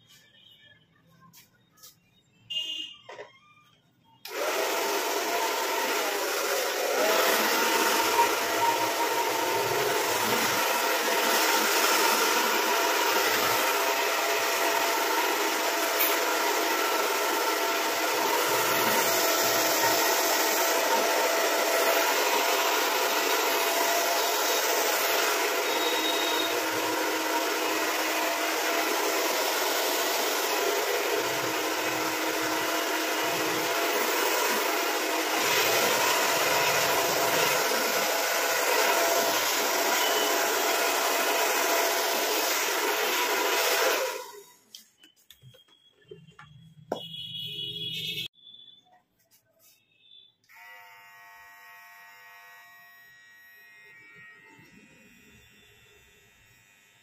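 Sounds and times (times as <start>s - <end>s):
hair dryer running: 4.2s - 44.6s, 50.5s - 57.0s.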